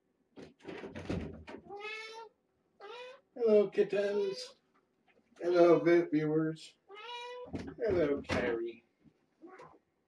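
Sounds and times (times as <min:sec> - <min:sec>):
kitten meowing: 0:01.7 - 0:03.2, 0:06.9 - 0:07.6.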